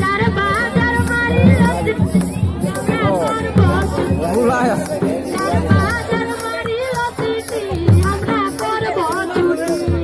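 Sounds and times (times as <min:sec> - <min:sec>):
low drum beats: 0:00.0 - 0:09.3
folk singing: 0:00.0 - 0:10.0.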